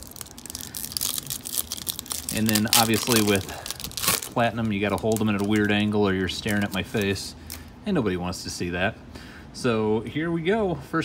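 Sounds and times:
foil wrapper tearing and crinkling: 0:00.0 - 0:07.7.

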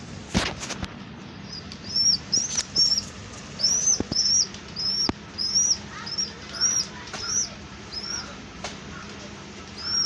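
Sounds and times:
pigeon squab begging peeps: 0:01.4 - 0:10.0.

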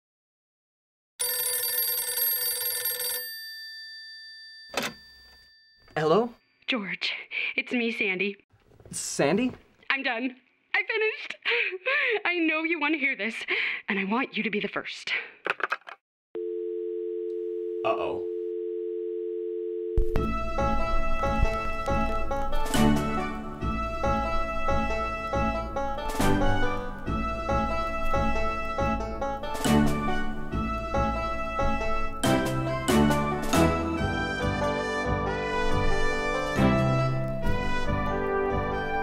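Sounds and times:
telephone dial tone: 0:01.2 - 0:03.3, 0:16.4 - 0:20.2
telephone bell ringing: 0:01.2 - 0:05.9.

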